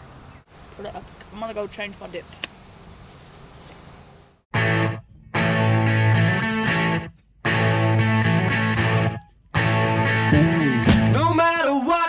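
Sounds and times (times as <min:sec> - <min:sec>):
rock music distorted guitar chords: 0:04.6 - 0:11.4.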